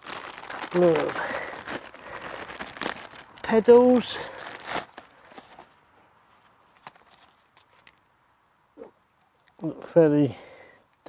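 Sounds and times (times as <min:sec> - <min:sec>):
plastic packaging rustling: 0:00.0 - 0:08.0
faint clicks of parts handled: 0:06.3 - 0:08.1.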